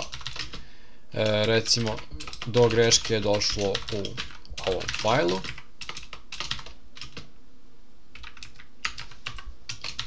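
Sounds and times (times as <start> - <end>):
typing on keyboard: 0.0 - 0.6, 1.2 - 7.3, 8.2 - 10.0.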